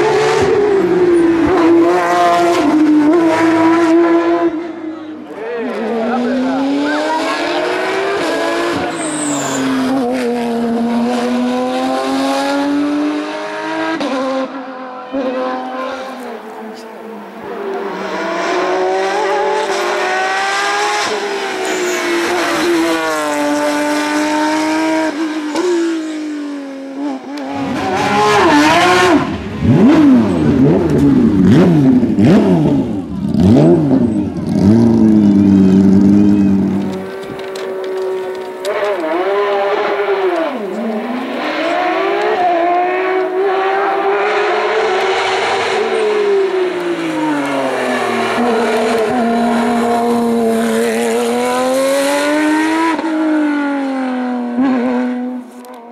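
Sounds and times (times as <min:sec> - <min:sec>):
racing engine revving: 0:00.0 - 0:04.9, 0:05.6 - 0:55.8
race car engine accelerating: 0:00.0 - 0:55.8.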